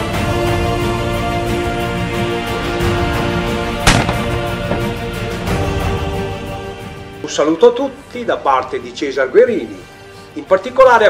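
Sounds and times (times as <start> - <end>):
background music: 0.0 - 11.0
shotgun shot: 3.9 - 4.5.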